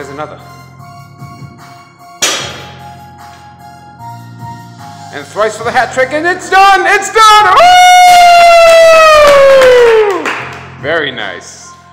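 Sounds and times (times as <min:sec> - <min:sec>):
background music: 0:00.0 - 0:11.9
barbell thud on rubber floor: 0:02.2 - 0:02.8.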